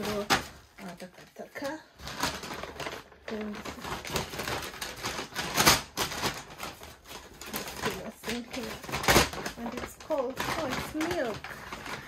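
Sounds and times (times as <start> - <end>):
paper bag rustling: 0.0 - 12.0.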